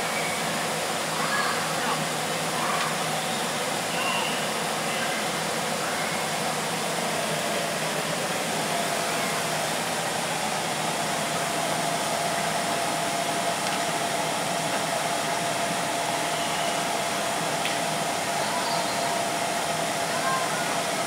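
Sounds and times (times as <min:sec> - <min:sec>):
faint constant hum: 0:00.0 - 0:21.0
fan rushing noise: 0:00.0 - 0:21.0.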